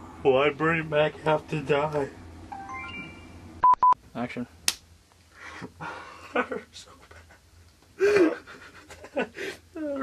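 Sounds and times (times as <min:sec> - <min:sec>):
censor bleep: 0:02.6 - 0:04.0.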